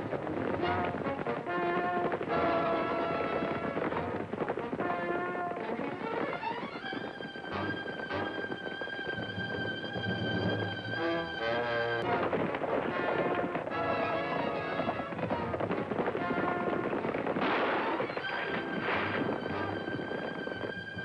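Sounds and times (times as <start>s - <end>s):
hoofbeats of galloping horses: 0.0s - 21.0s
western film score music: 0.0s - 21.0s
gunshots: 16.2s - 19.7s.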